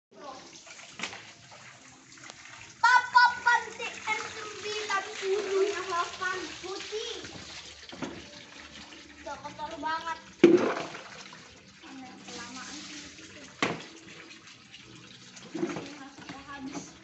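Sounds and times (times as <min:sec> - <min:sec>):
water pouring from a pipe: 0:00.2 - 0:17.0
water splashing: 0:00.2 - 0:17.0
young children's voices: 0:02.8 - 0:07.4, 0:09.2 - 0:10.2.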